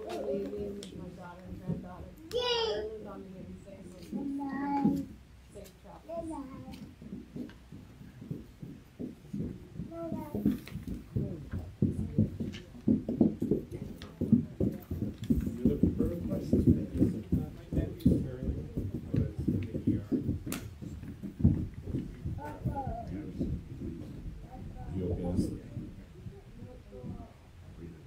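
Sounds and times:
muffled distant speech: 9.2s - 28.0s.

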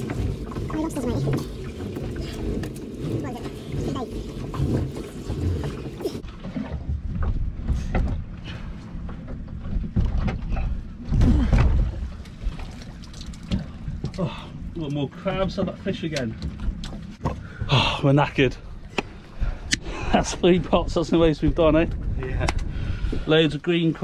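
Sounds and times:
wind rumbling on microphone: 18.4s - 24.0s.

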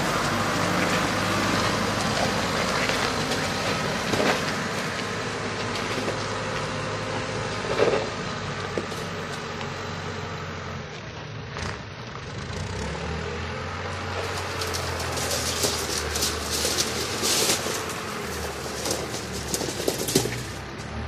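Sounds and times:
diesel engine running: 0.0s - 21.0s
rubble clattering and scraping: 0.1s - 9.4s, 13.9s - 20.9s.

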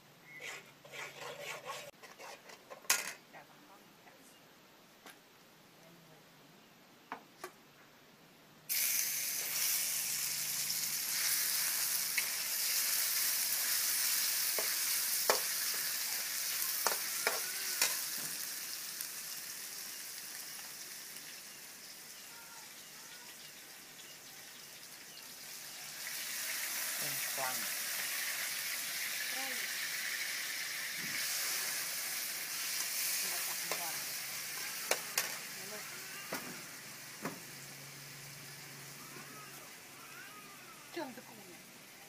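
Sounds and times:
meat sizzling in a wok: 8.7s - 42.0s.

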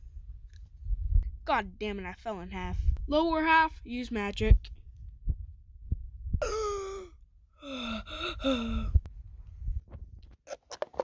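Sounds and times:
person making wordless sounds: 6.4s - 9.0s.

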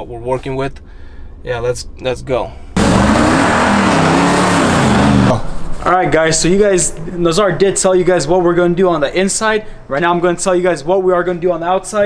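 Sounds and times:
car engine accelerating past: 2.8s - 5.4s.

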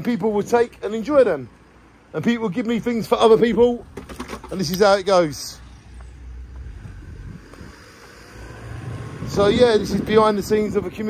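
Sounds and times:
wind buffeting microphone: 6.2s - 11.0s.

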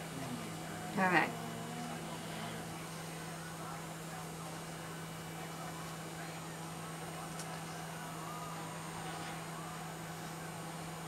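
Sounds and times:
steady low motor hum: 0.0s - 11.0s.

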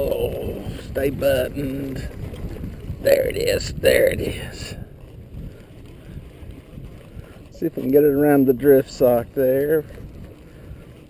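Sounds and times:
faint lake water lapping: 0.0s - 11.0s
wind buffeting microphone: 0.0s - 11.0s.

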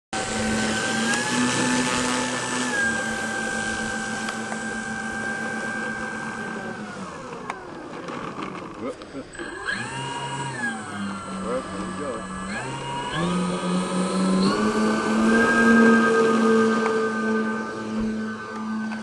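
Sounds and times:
model plane electric motors whining: 0.2s - 19.0s.

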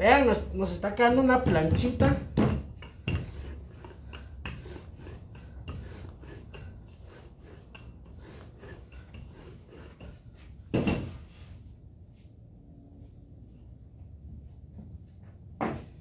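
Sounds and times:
rolling pin knocking on table: 1.3s - 3.5s, 10.7s - 11.2s.

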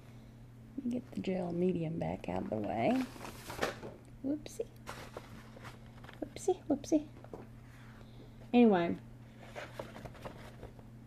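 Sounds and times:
steady low hum: 0.0s - 11.0s
paper rustling: 4.8s - 6.3s.

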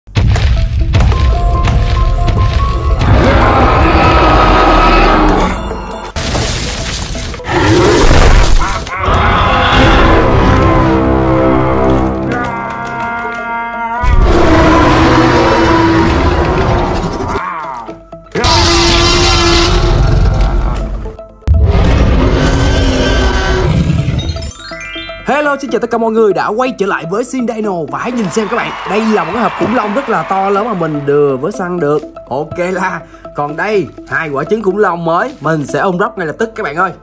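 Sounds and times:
background music: 0.1s - 37.0s
dinosaur roar sound effect: 3.0s - 5.5s, 7.5s - 24.2s.

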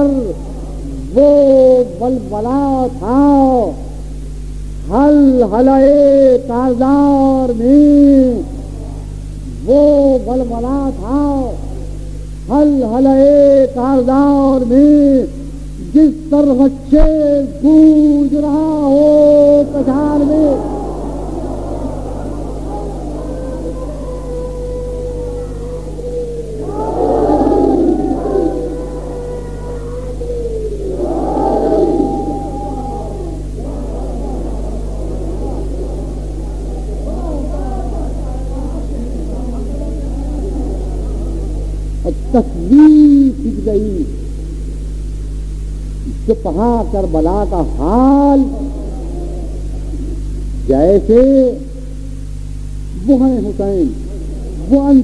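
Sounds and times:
man chanting: 0.0s - 4.0s, 4.8s - 44.6s, 46.0s - 51.9s, 52.9s - 55.0s
low mains hum: 0.0s - 55.0s.

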